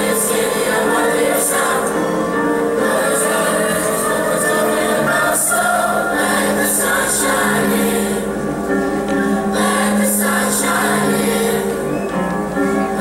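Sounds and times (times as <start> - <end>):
children's chorus singing: 0.0 - 8.4, 9.2 - 13.0.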